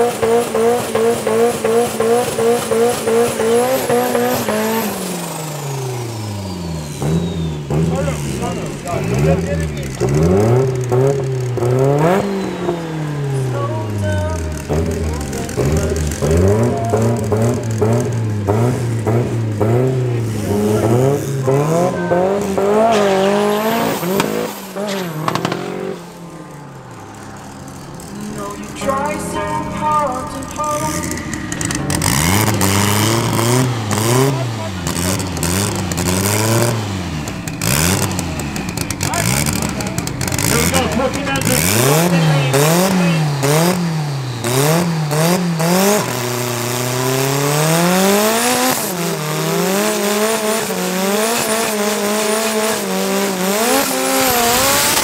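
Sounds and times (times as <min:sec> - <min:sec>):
car engine driving away: 0:00.0 - 0:55.0
drag car engines revving: 0:00.0 - 0:55.0
tyres spinning in burnout: 0:00.0 - 0:55.0.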